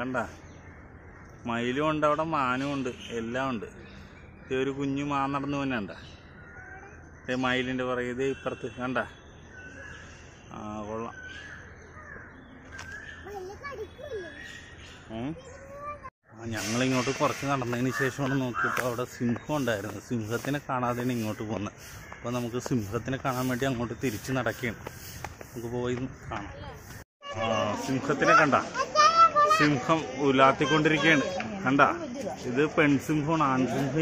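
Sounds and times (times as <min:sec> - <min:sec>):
animal or bird calls: 0:06.2 - 0:25.6
children talking and calling out: 0:06.4 - 0:07.4, 0:11.8 - 0:16.2, 0:26.4 - 0:34.0.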